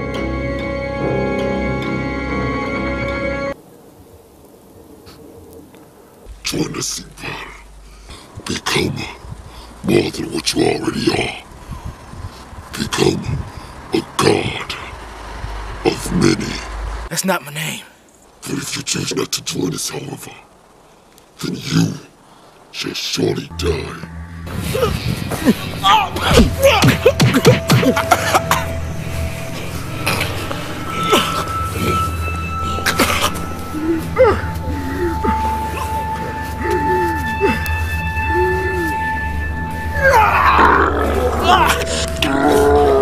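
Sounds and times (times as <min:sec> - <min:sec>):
low droning music: 0:00.0 - 0:03.6, 0:06.2 - 0:17.1, 0:23.5 - 0:43.0
man's strained cries: 0:32.7 - 0:39.1, 0:39.9 - 0:43.0
growling roaring vocalisation: 0:40.0 - 0:43.0.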